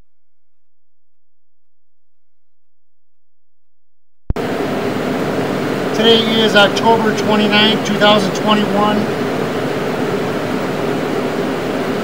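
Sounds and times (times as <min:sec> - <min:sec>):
steady mechanical hum: 0:04.4 - 0:12.0.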